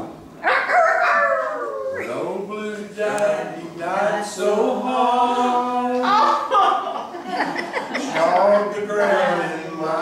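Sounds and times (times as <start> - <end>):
people howling: 0.4 - 2.2.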